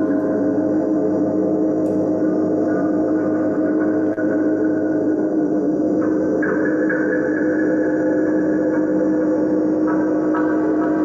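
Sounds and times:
electronic drone music: 0:00.0 - 0:11.0.

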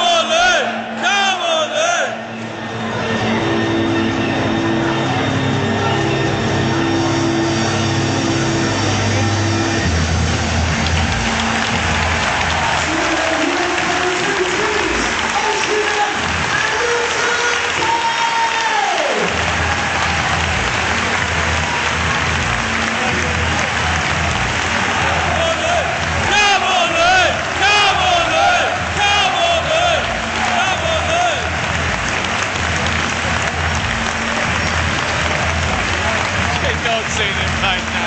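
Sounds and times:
crowd cheering and applauding: 0:00.0 - 0:38.0.

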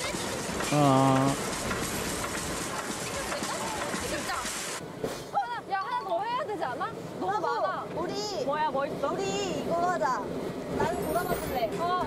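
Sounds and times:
young women talking animatedly: 0:05.3 - 0:12.0.

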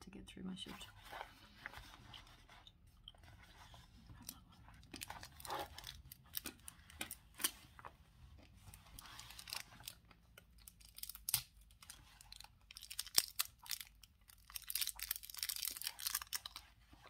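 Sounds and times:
book pages crinkling and rustling: 0:00.7 - 0:17.0.

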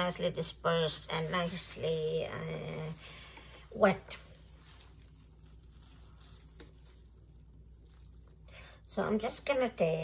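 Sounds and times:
faint rustling: 0:00.5 - 0:09.5.

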